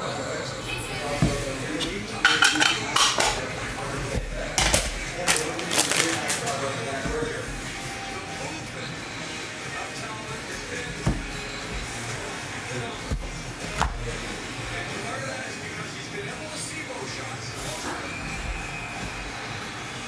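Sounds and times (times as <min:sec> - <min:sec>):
cards shuffling: 0:04.2 - 0:07.2
plastic crinkling: 0:05.2 - 0:06.8.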